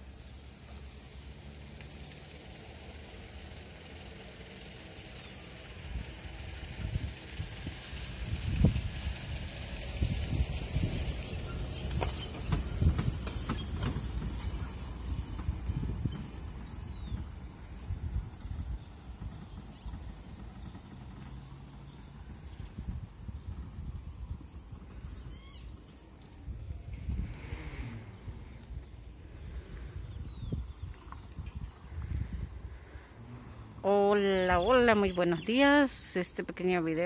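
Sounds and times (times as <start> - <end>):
wind buffeting microphone: 5.7 - 35.8.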